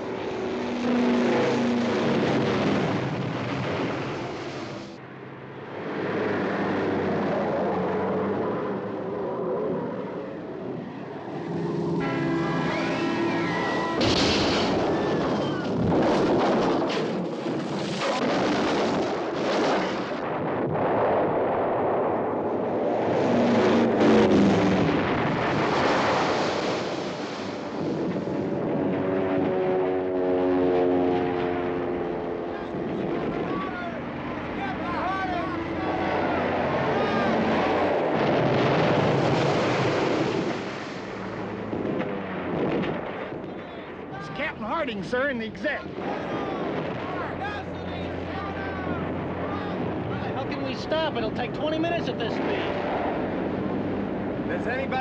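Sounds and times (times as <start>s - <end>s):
aircraft engines: 0.0s - 55.0s
explosions: 1.7s - 4.9s, 13.5s - 28.9s, 35.8s - 44.6s, 45.8s - 50.2s
gunfire: 14.0s - 20.5s.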